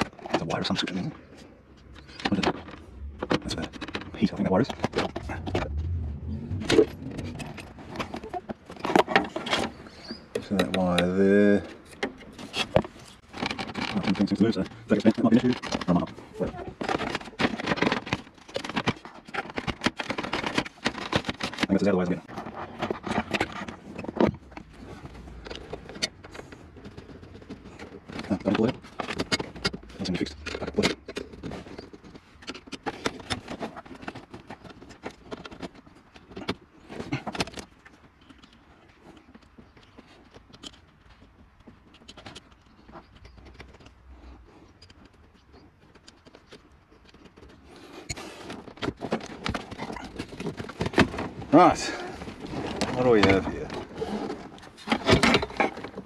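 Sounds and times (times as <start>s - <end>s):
hand tools clicking and scraping: 0.0s - 56.0s
man talking: 51.5s - 52.1s, 52.9s - 53.8s.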